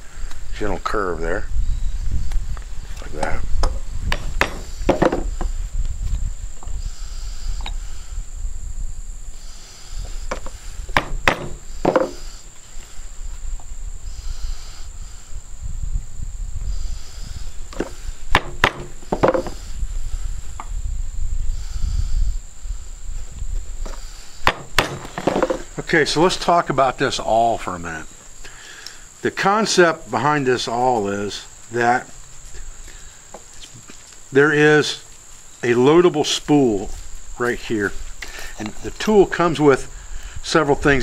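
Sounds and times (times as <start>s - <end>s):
knocks on wooden workbench: 4.1s - 5.3s, 10.3s - 12.2s, 18.4s - 19.6s.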